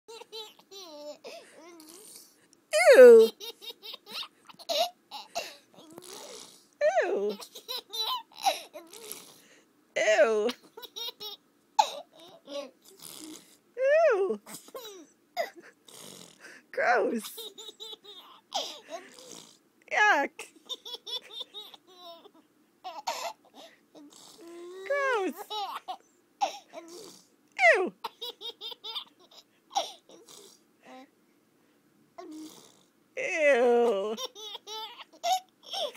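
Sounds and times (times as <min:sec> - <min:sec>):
toddler laughing: 0:07.3 - 0:08.9, 0:34.2 - 0:35.9.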